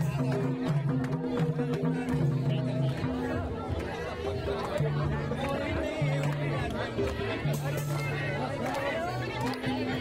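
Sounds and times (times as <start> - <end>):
crowd chatter: 0.0 - 10.0
live folk dance music: 0.0 - 10.0.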